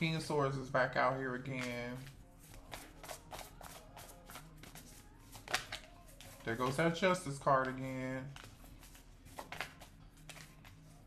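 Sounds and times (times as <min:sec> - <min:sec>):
cards being shuffled: 0:01.4 - 0:11.0.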